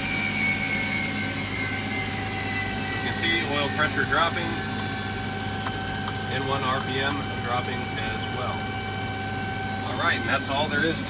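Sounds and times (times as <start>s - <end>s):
jet engine whine falling: 0.0s - 11.0s
steady hum: 0.0s - 11.0s.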